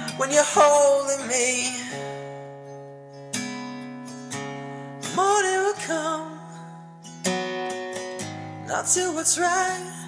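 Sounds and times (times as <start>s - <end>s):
acoustic guitar chords strummed: 0.0s - 10.0s.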